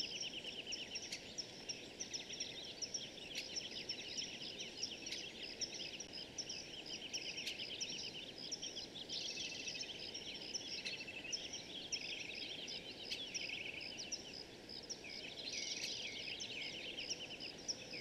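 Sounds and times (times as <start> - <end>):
birds chirping and trilling: 0.0 - 18.0.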